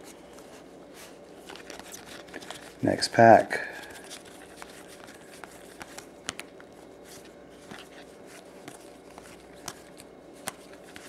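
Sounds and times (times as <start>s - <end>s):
trading cards being flipped: 0.0s - 2.8s, 3.8s - 11.0s
man speaking: 2.8s - 3.8s.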